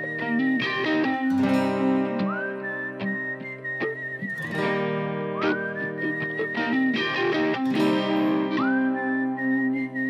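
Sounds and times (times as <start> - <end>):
plucked acoustic guitar: 0.0 - 10.0.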